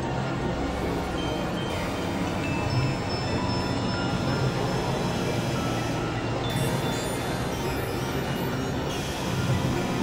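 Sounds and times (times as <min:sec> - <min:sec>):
synthesizer drone with grainy noise: 0:00.6 - 0:10.0.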